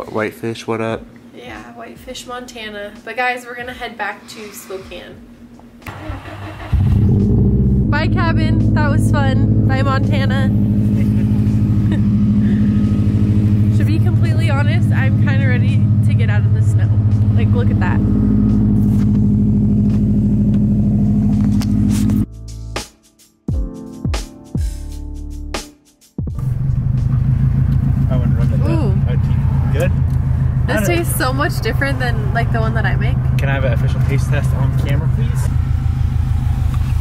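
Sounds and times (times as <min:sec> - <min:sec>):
car engine idling: 0:05.8 - 0:22.2, 0:26.4 - 0:37.0.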